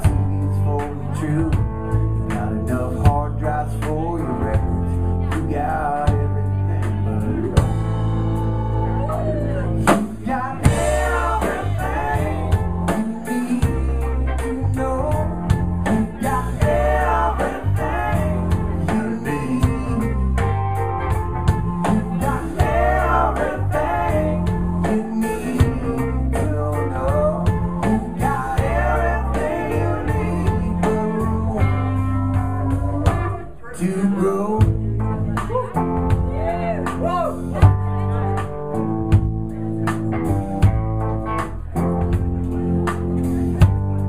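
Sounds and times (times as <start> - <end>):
man singing: 0.0 - 7.7, 9.2 - 20.8, 21.5 - 38.0
rock band playing: 0.0 - 44.0.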